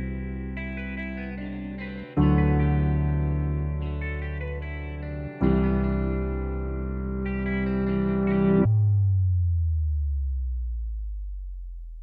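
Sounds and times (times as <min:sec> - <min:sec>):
low bass tone ringing: 0:00.0 - 0:12.0.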